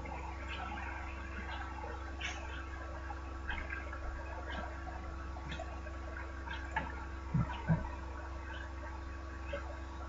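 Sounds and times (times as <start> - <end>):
electrical hum and hiss: 0.0 - 10.0.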